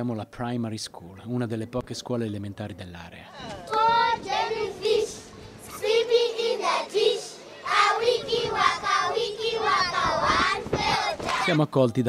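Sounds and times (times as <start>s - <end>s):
children singing in chorus: 3.7s - 11.4s.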